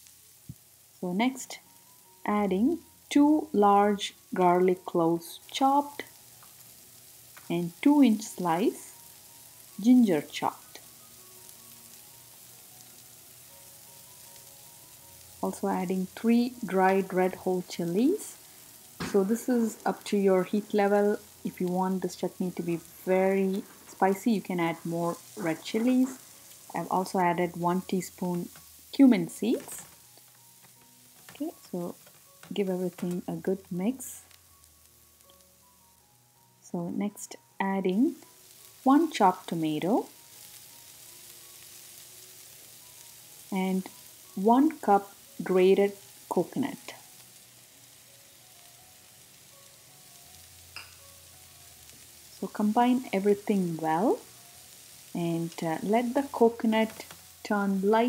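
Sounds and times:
food sizzling in a pan: 0.0 - 58.0
soft background music: 0.0 - 58.0.

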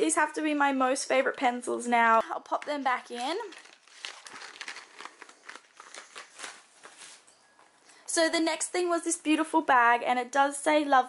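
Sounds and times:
paper rustling: 2.5 - 7.4.

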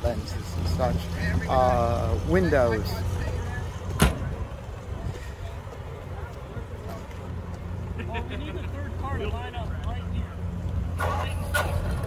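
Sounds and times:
engines idling low hum: 0.0 - 12.0
car door shutting: 4.0 - 4.3.

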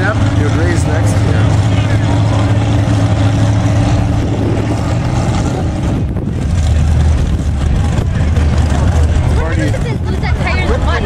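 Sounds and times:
truck engine running loudly: 0.0 - 11.0.

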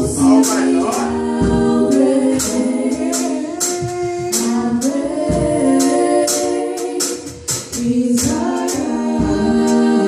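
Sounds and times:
women singing in harmony: 0.0 - 10.0.

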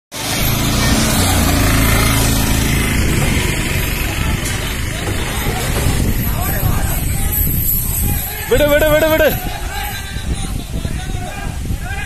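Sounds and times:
vehicle engine running: 0.2 - 7.6
people's voices: 0.2 - 12.0.

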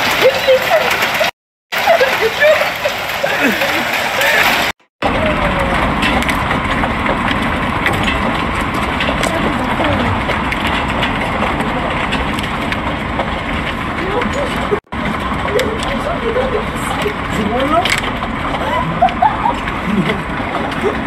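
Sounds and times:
hail hissing down: 0.0 - 21.0
hailstones ticking on concrete and metal: 0.0 - 21.0.

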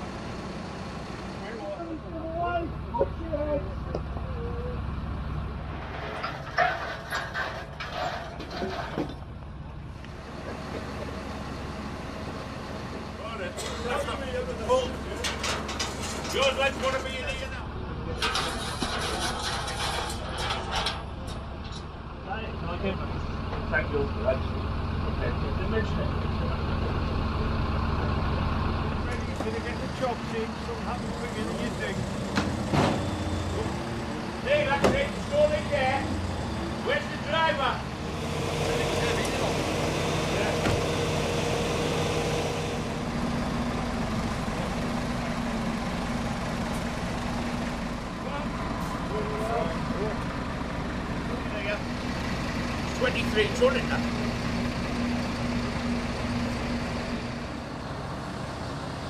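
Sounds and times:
heavy diesel engine running: 0.0 - 59.0
people talking: 1.4 - 4.8, 13.2 - 15.6, 16.2 - 18.6, 22.2 - 27.1, 28.9 - 32.0, 34.4 - 36.2, 36.8 - 37.8, 38.6 - 40.8, 48.2 - 50.3, 51.3 - 51.8, 52.9 - 54.2.

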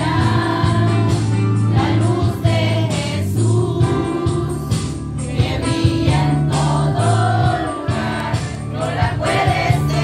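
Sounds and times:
choir singing: 0.0 - 1.1, 1.7 - 4.6, 5.2 - 10.0
steady bass notes: 0.0 - 10.0.

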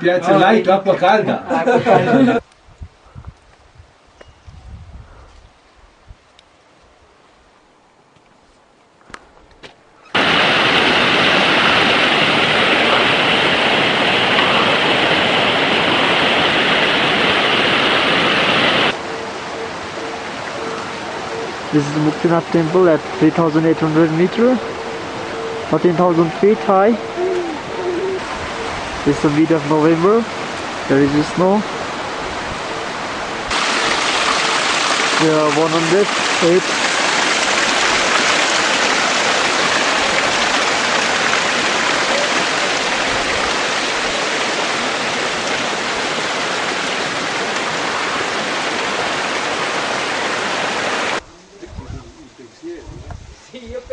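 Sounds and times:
stream rushing over rocks: 10.2 - 51.2.

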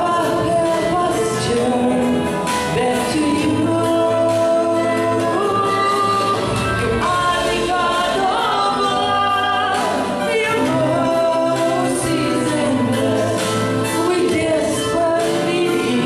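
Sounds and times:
group singing worship song: 0.0 - 16.0
instrumental accompaniment: 0.0 - 16.0.

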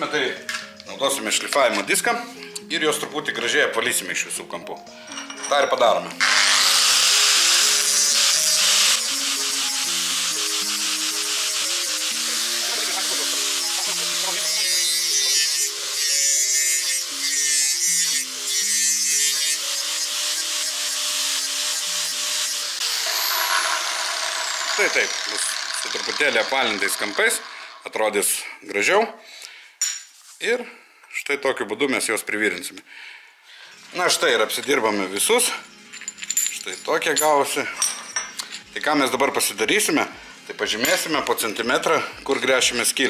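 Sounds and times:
background music with melody: 0.0 - 23.4, 33.7 - 43.0
angle grinder grinding steel: 6.2 - 28.4.

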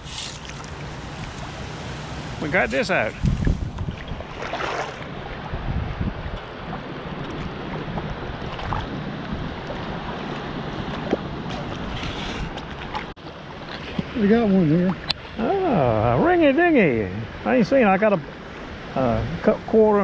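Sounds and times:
shallow water moving: 0.0 - 15.8
rushes of water: 0.0 - 16.2
wind buffeting microphone: 2.4 - 13.1.

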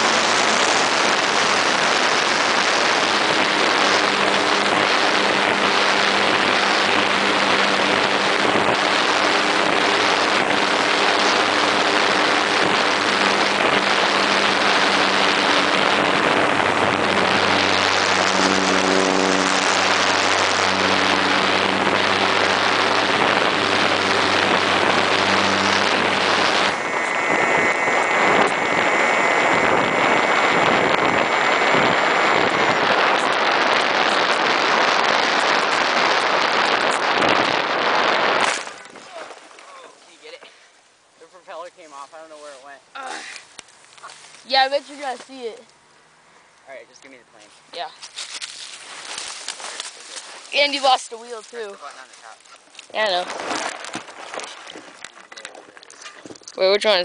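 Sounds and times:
wind rushing over microphone: 0.0 - 40.2, 47.7 - 57.0
high motor whine: 0.0 - 57.0
motor and propeller hum: 0.0 - 57.0.

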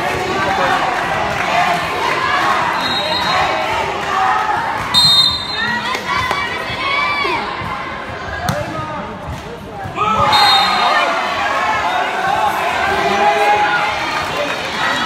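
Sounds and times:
spectators chattering and shouting: 0.0 - 15.0.

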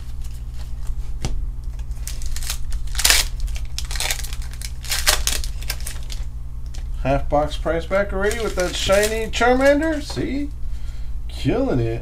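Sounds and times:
foil rustling: 0.0 - 6.9, 7.6 - 10.5
steady low hum: 0.0 - 12.0
foil pack tearing: 1.7 - 6.8, 8.1 - 10.2.

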